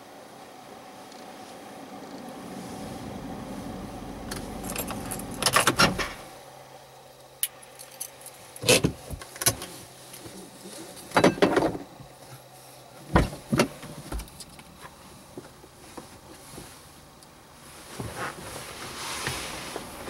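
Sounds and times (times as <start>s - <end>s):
low vehicle rumble: 0.0s - 20.0s
keys jangling: 4.6s - 5.6s.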